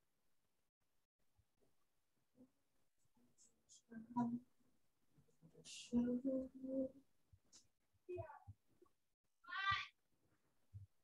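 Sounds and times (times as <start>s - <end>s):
cat meowing: 9.5s - 9.9s.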